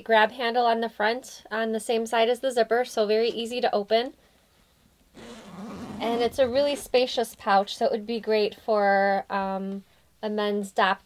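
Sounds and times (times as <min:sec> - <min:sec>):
fabric pouch rustling: 0:05.2 - 0:07.0.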